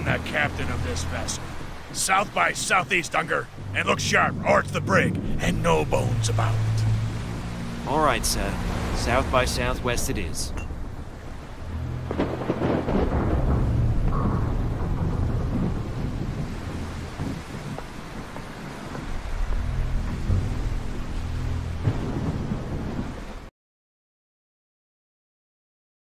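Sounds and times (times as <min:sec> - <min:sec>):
steady rain: 0:00.0 - 0:23.5
rolling thunder: 0:10.6 - 0:23.5.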